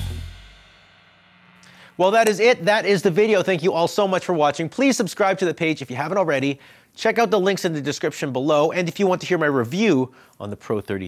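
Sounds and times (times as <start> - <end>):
rock band final chord: 0.0 - 1.6.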